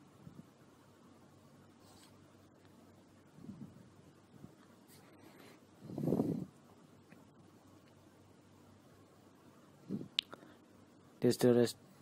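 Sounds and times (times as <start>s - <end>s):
faint rubbing noises: 1.7s - 2.2s, 4.8s - 6.6s.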